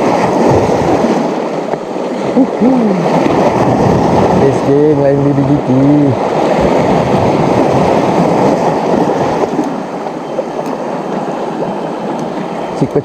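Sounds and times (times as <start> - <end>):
sea water washing against rocks: 0.0 - 13.0.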